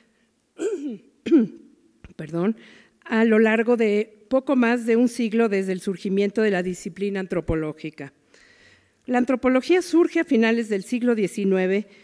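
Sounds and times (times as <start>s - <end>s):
woman clearing throat: 0.6s - 1.7s.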